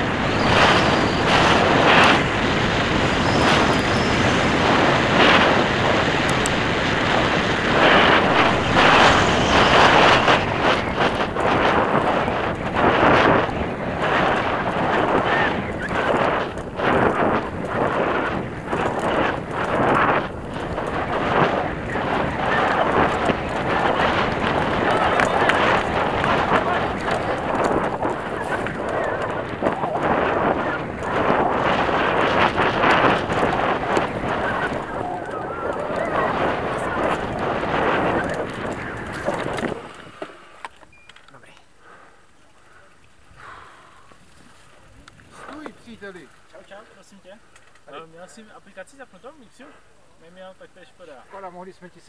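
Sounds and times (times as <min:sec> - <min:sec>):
wind rushing over microphone: 0:00.0 - 0:40.3
bike tyres rolling over gravel: 0:00.0 - 0:40.8, 0:43.0 - 0:47.9.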